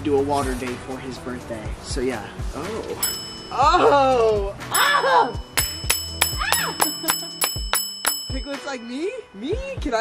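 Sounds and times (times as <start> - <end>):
bell-like ding sound effects: 3.0 - 9.3.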